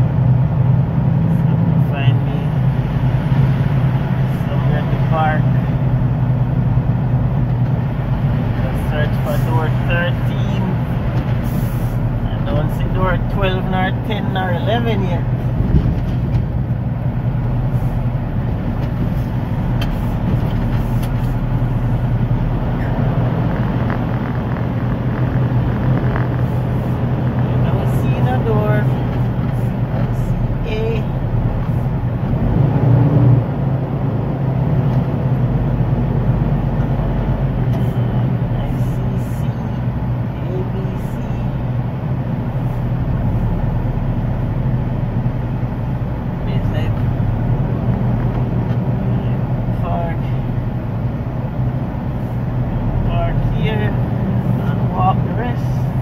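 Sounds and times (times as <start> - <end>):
diesel truck engine running: 0.0 - 56.0
road noise: 0.0 - 56.0.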